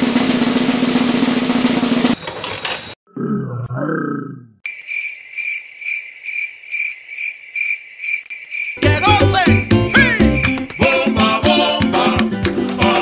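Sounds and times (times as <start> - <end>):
crickets chirping: 4.6 - 11.7
music with a beat: 8.8 - 13.0.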